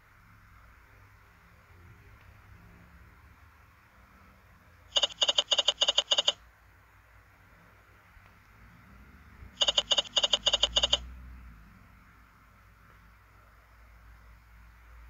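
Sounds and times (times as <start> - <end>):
slot machine reel-stop tones: 5.0 - 6.4, 9.6 - 11.0.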